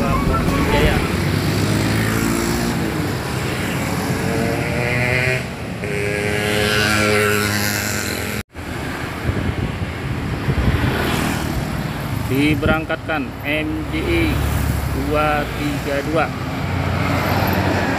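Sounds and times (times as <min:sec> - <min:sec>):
multi-tone bus horn: 0:00.0 - 0:01.1
passing traffic: 0:00.0 - 0:17.9.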